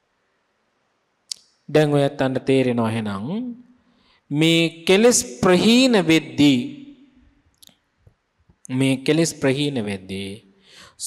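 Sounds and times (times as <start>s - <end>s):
man speaking into microphone: 1.7s - 3.6s, 4.3s - 6.8s, 8.7s - 11.0s.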